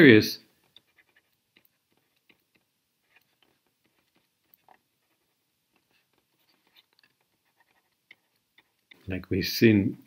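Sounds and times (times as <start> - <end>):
stylus tapping on tablet screen: 0.6 - 9.0.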